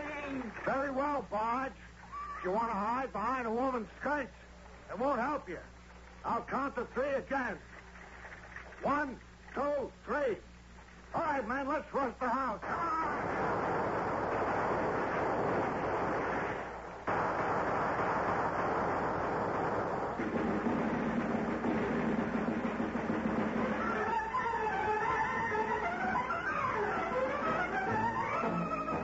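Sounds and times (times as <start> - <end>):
orchestral music with bowed strings: 23.8 - 29.0.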